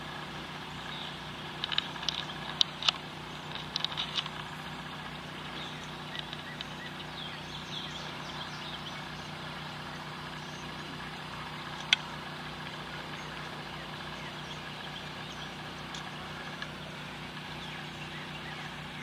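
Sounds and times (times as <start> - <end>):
outdoor background hum: 0.0 - 19.0
bird chirps: 0.7 - 12.1, 12.8 - 19.0.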